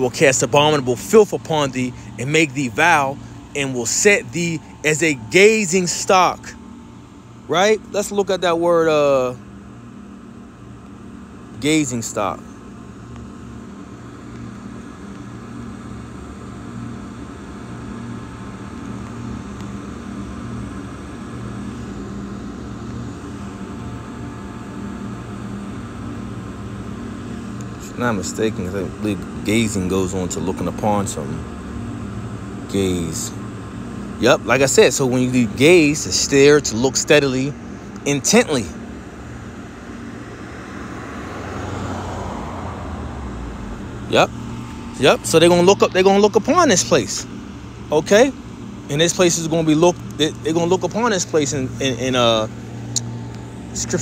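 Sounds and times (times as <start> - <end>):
background rumble and hiss: 0.0 - 41.0, 43.0 - 54.0
low mechanical hum: 0.0 - 54.0.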